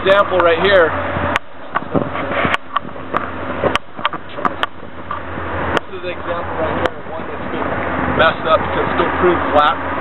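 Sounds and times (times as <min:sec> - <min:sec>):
road traffic noise: 0:00.0 - 0:10.0.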